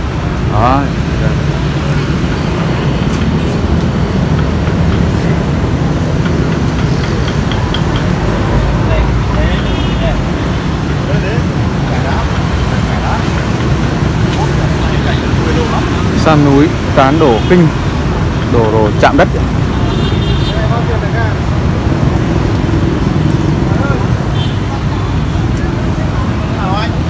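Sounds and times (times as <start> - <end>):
road traffic rumble: 0.0 - 27.0.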